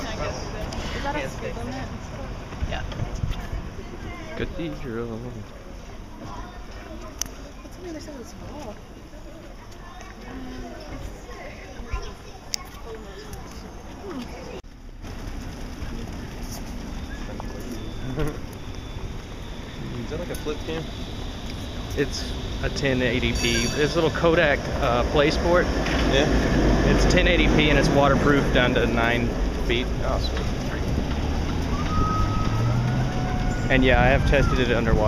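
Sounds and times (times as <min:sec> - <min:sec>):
low street rumble: 0:00.0 - 0:35.0.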